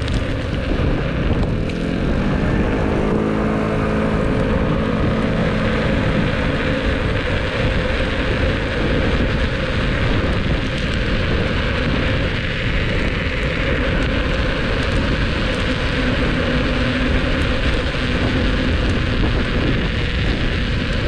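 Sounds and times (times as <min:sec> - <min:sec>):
electric motor whine: 0:00.0 - 0:21.0
tyre noise on asphalt: 0:00.0 - 0:21.0
wind rumble on microphone: 0:00.0 - 0:21.0.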